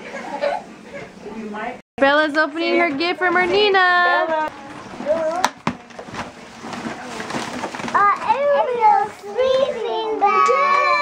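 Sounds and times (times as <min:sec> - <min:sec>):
paper rustling: 0:04.8 - 0:09.6.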